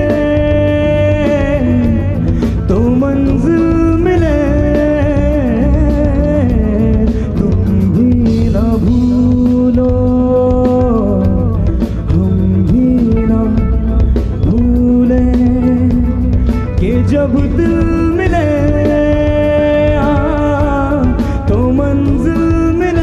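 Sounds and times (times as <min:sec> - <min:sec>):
live band playing: 0:00.0 - 0:23.0.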